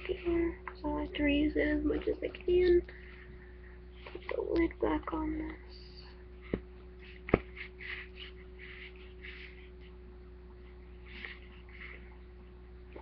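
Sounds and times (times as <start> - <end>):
faint hum: 0.0 - 13.0
soft rustling and handling: 1.9 - 4.7, 6.3 - 13.0.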